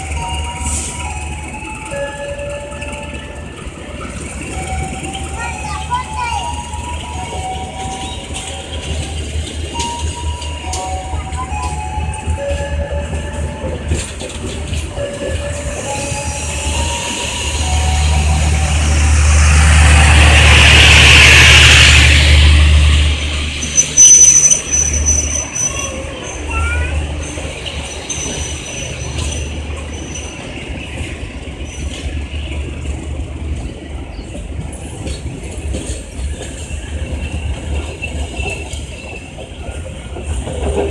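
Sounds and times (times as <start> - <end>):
train wheels rumbling on rail: 0.0 - 40.9
wheel squeals: 23.6 - 31.0.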